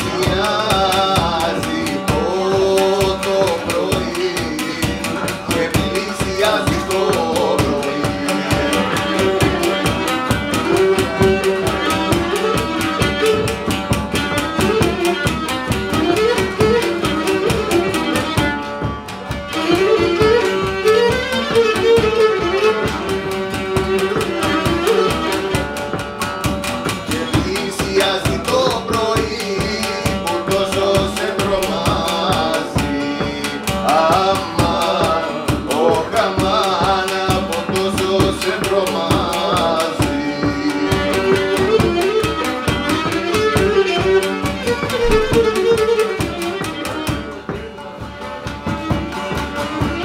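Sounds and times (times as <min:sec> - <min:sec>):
drum beating time: 0:00.0 - 0:50.0
lute strumming: 0:00.0 - 0:50.0
bowed lyra melody: 0:41.2 - 0:48.0.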